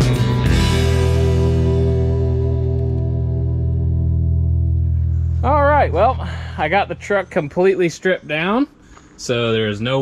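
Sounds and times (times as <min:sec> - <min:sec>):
electric guitar rock music: 0:00.0 - 0:08.0.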